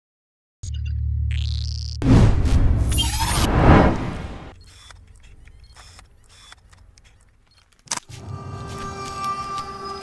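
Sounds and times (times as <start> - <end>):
camera shutter click: 4.6 - 8.1.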